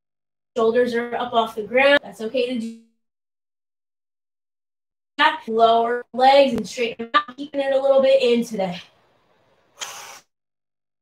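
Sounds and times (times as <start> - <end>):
woman exhaling sharply: 9.8 - 10.3.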